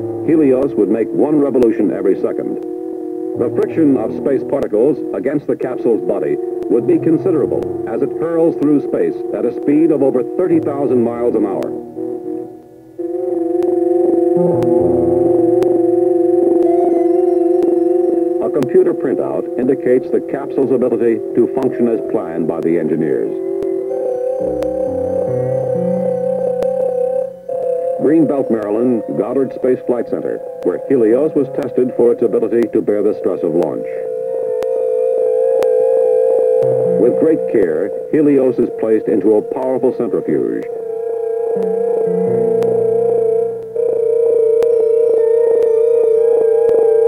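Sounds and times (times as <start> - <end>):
electronic drone: 0.0 - 32.6, 33.4 - 38.3, 40.6 - 47.0
synthesizer chord: 3.3 - 9.4, 10.4 - 17.6, 23.9 - 28.0, 36.6 - 37.5, 41.5 - 44.4.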